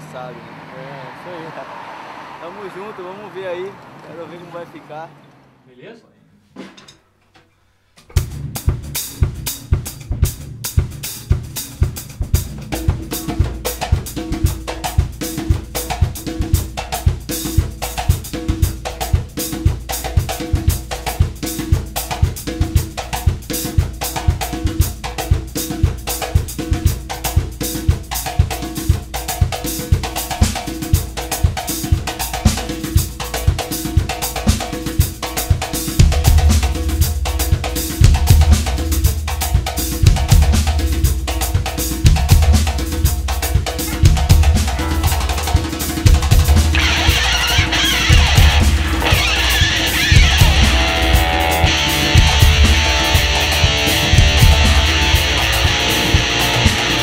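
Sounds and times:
drum kit playing a groove: 8.1 - 57.0
hand drum: 8.1 - 57.0.

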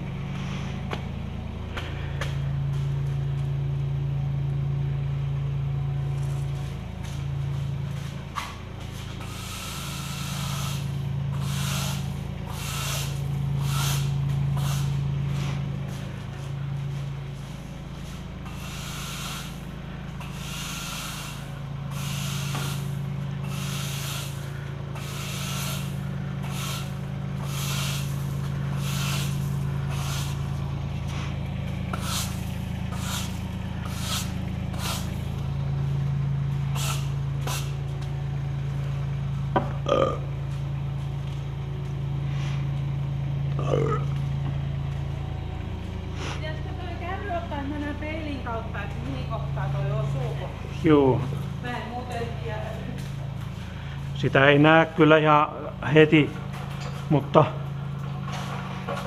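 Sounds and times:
low hum: 0.0 - 59.0
broom sweeping concrete floor: 0.3 - 1.0, 6.1 - 38.9, 42.2 - 42.9, 46.1 - 46.5, 58.2 - 59.0.

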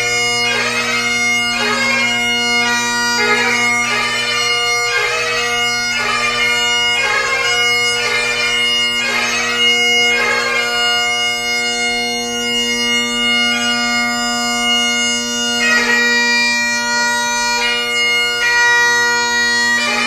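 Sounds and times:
bagpipe playing: 0.0 - 20.0.

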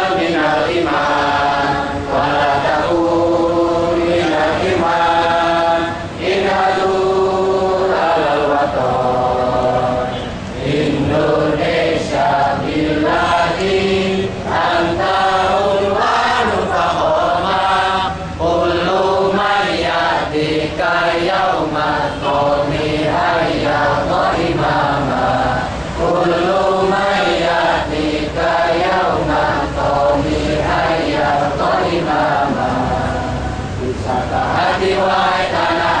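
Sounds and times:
group singing in unison: 0.0 - 36.0.

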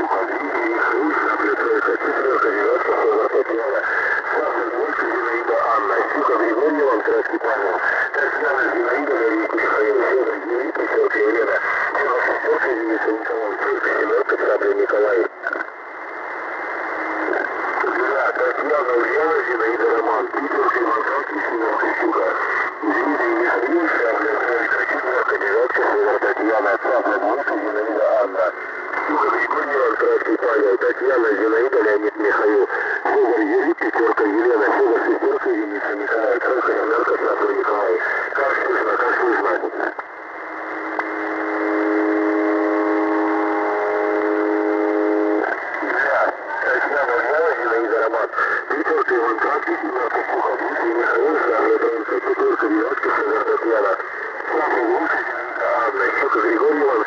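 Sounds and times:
indistinct radio voices in static: 0.0 - 57.0
steady buzzing tone: 0.0 - 57.0.

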